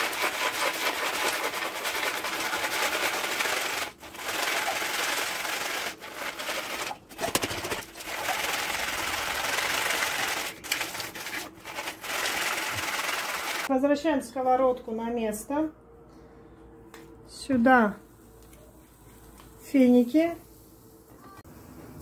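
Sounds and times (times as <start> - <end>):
nuts rattling in plastic colander: 0.0 - 13.7.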